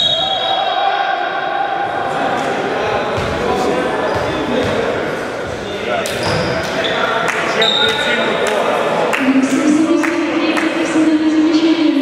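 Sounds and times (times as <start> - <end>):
players' voices: 0.0 - 12.0
basketball bouncing on floor: 3.2 - 3.4
shoe squeaks: 6.2 - 8.1.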